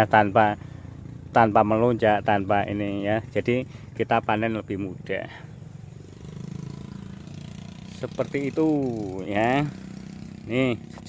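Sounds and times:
small engine running: 5.3 - 11.0.

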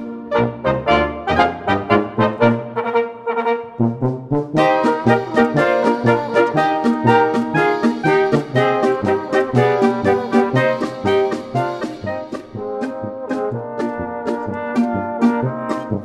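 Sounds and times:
brass band playing polka: 0.0 - 16.0.

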